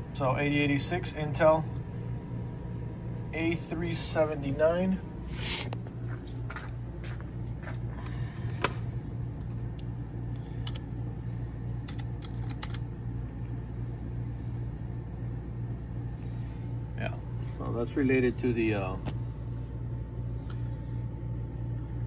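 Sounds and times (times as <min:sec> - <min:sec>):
steady low hum: 0:00.0 - 0:22.0
computer keyboard keystrokes: 0:10.6 - 0:10.8, 0:11.8 - 0:12.8.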